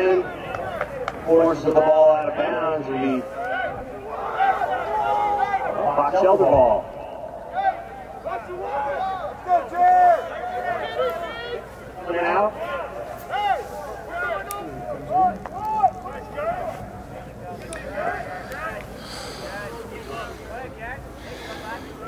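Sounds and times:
people shouting calls: 0:00.0 - 0:22.0.

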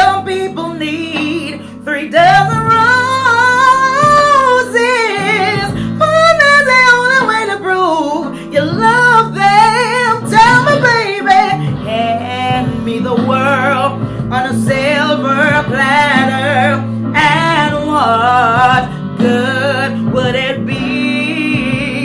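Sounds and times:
woman singing with vibrato: 0:00.0 - 0:22.0.

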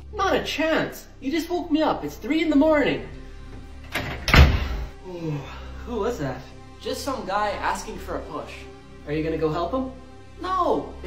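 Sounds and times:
door shutting with a thud: 0:03.8 - 0:04.9.

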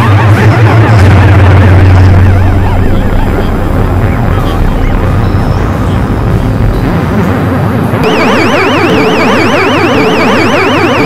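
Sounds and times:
warbling synth tones: 0:00.0 - 0:11.0
high wavering synth tones: 0:08.0 - 0:11.0.

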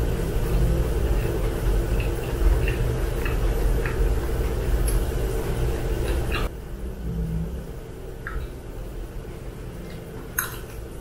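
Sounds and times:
chewing food with crunches: 0:00.0 - 0:06.5, 0:09.3 - 0:11.0
low rumble: 0:06.5 - 0:09.9.

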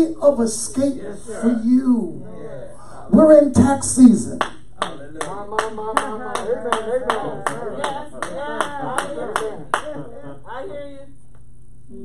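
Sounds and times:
person speaking: 0:00.0 - 0:04.5
rhythmic hand clapping: 0:04.3 - 0:10.1.

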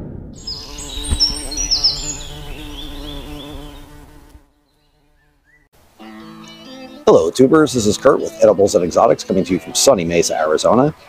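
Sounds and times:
boom: 0:00.0 - 0:02.3
wavering buzz with high chirps: 0:00.4 - 0:07.1
music: 0:05.9 - 0:10.9.

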